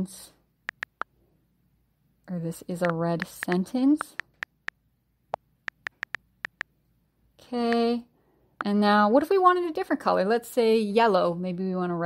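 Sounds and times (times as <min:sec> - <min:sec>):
on-screen keyboard clicks: 0:00.7 - 0:01.1, 0:02.8 - 0:04.7, 0:05.7 - 0:06.7.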